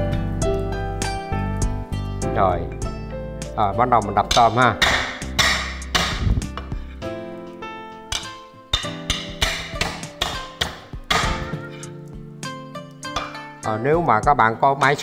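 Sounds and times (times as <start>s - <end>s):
background music: 0.0s - 15.0s
cleaver thudding on chopping block: 8.8s - 11.7s.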